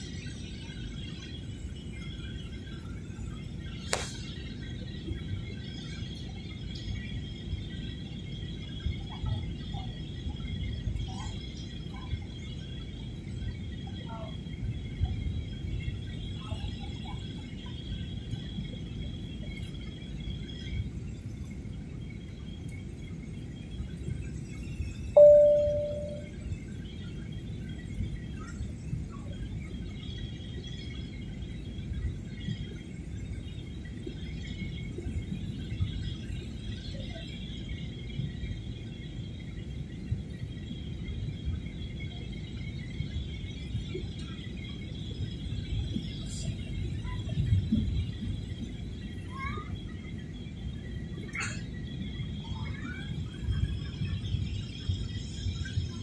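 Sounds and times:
airliner cabin noise: 0.0s - 56.0s
cabin chime: 25.2s - 26.3s.

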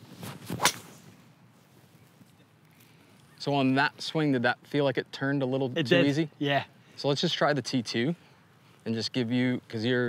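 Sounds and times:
golf club whoosh: 0.2s - 1.2s.

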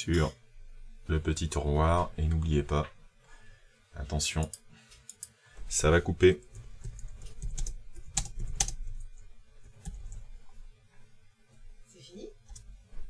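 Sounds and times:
computer keyboard clicking: 6.6s - 9.2s.

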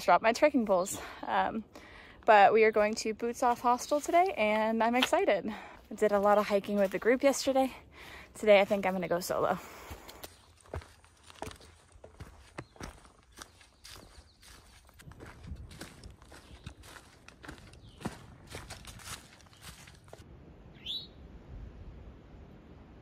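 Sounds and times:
footsteps crunching dry leaves: 8.5s - 20.2s.

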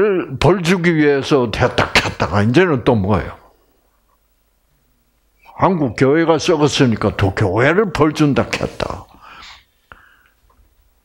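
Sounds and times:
man's breathy exhale: 9.1s - 10.4s.

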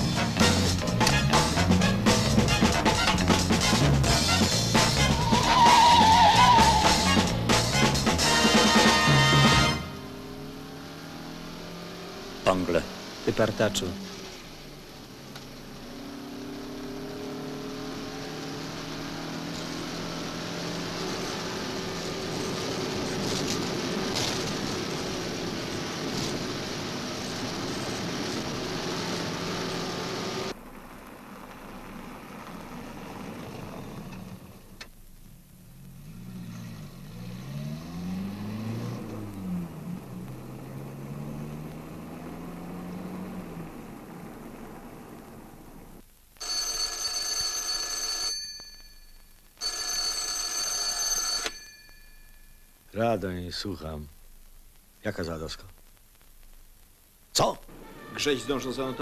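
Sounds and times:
car engine running: 0.0s - 34.9s
engine pitch rising and falling: 36.0s - 45.6s
telephone bell ringing: 46.4s - 52.7s.

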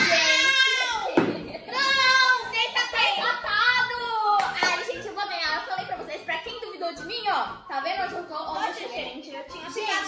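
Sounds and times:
girls laughing: 0.0s - 3.8s
girls exclaiming in sing-song tones: 0.0s - 4.4s
hand claps: 4.4s - 4.9s.

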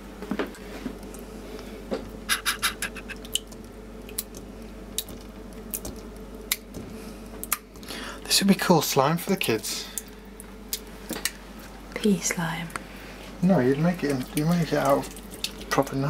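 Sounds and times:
wet gel clicks and squelches: 3.1s - 6.8s.

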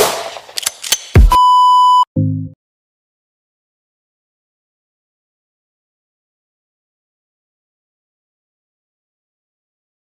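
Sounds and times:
test-tone beep: 1.3s - 2.1s.

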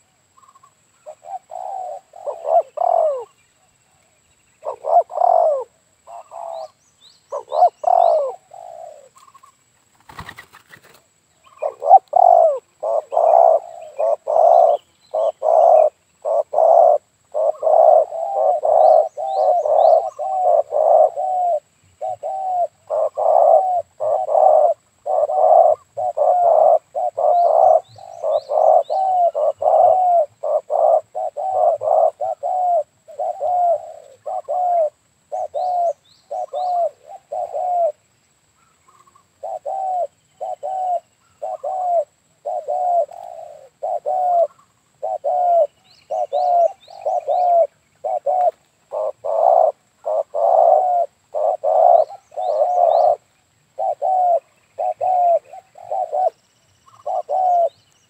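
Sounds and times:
doves cooing: 0.0s - 3.4s, 4.6s - 38.0s, 38.9s - 57.8s
small bird chirping: 0.0s - 58.0s.

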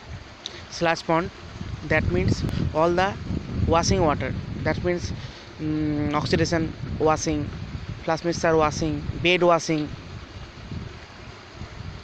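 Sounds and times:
steady background hiss: 0.0s - 12.0s
wind buffeting microphone: 0.0s - 12.0s.

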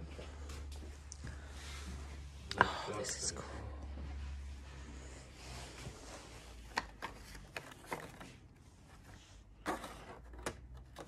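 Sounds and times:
paper rustling: 6.0s - 11.0s.

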